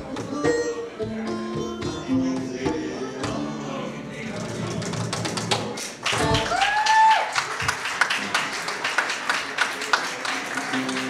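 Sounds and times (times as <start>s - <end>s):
acoustic guitar music: 0.0s - 6.4s, 10.7s - 11.0s.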